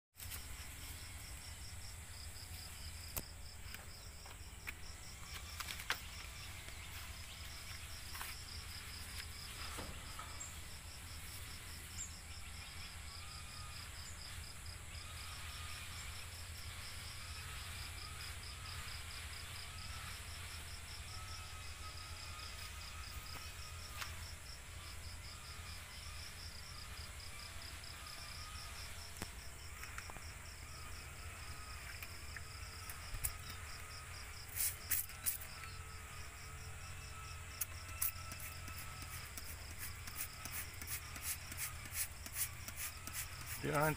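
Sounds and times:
insect trilling: 0.3 - 43.9.

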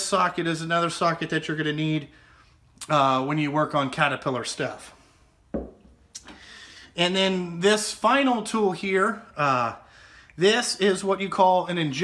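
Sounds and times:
dull thump of tools: 5.5 - 5.9.

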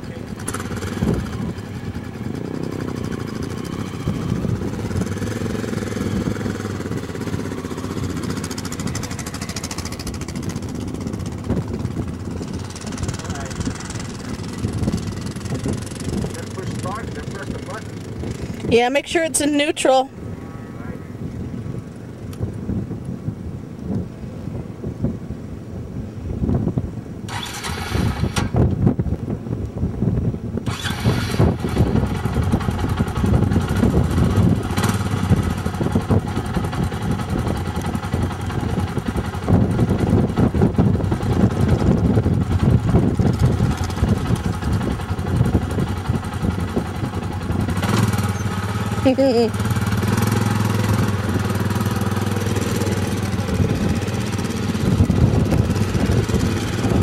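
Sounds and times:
atv engine starting and running: 0.0 - 20.3, 27.2 - 29.8, 30.4 - 57.0.

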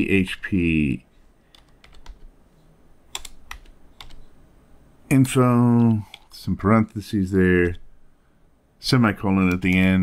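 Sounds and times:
keyboard typing: 1.5 - 2.3, 3.1 - 4.3, 5.8 - 7.0, 9.4 - 10.0.

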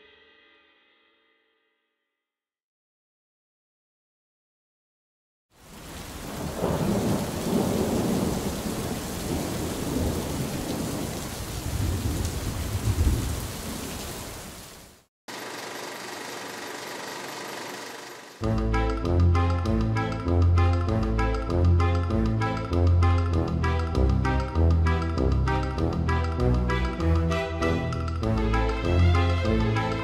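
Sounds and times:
music: 0.0 - 2.5, 18.4 - 30.0
steady rain: 5.6 - 15.8
rolling thunder: 6.0 - 13.9.

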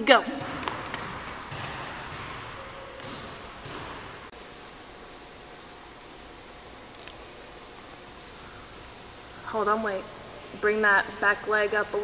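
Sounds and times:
footfalls running on gym floor: 0.0 - 4.4
room hiss: 1.0 - 12.0.

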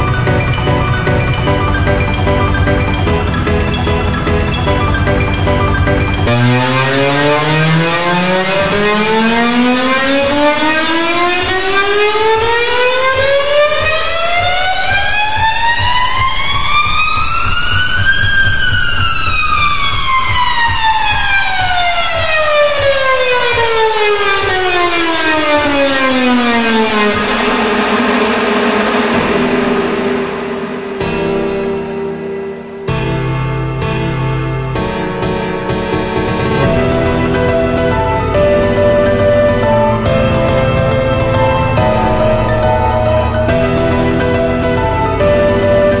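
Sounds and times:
held piano chord: 0.0 - 17.2, 23.5 - 46.0
dense piano note cluster sweeping: 0.0 - 46.0.

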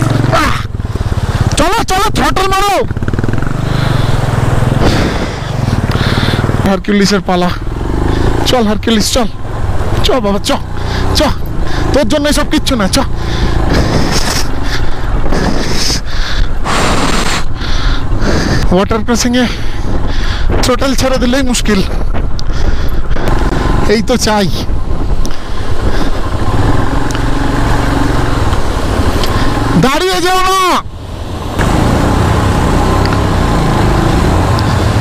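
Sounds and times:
motorcycle engine at low revs: 0.0 - 30.0, 30.9 - 35.0.

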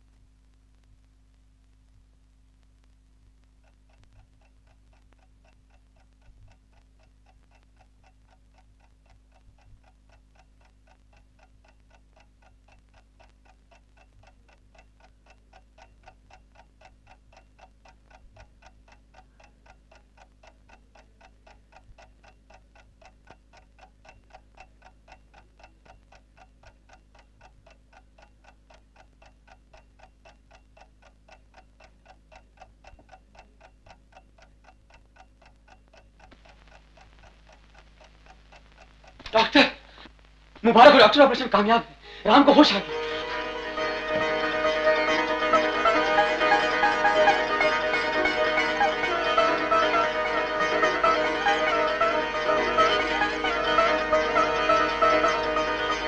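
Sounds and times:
clock ticking: 0.0 - 56.0
faint low hum: 0.0 - 56.0.

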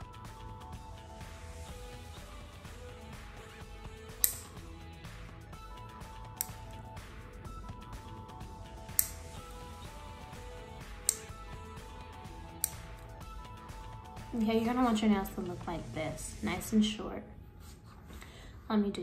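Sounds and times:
soft background music: 0.0 - 19.0
nail clipper clicking: 4.1 - 4.6, 6.2 - 6.8, 8.8 - 9.9, 10.8 - 11.4, 12.5 - 13.0.

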